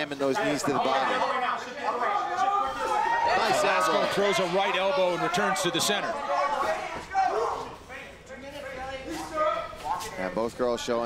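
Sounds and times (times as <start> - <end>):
low arena background: 0.0 - 11.0
shouted voice calls: 0.3 - 8.2.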